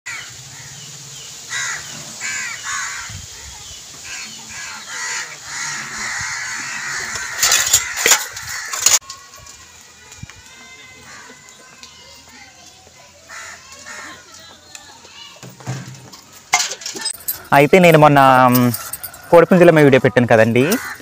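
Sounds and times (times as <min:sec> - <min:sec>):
crows cawing: 0:00.1 - 0:00.8, 0:01.5 - 0:03.2, 0:04.0 - 0:09.0, 0:11.0 - 0:11.6, 0:13.3 - 0:14.3, 0:20.6 - 0:21.0.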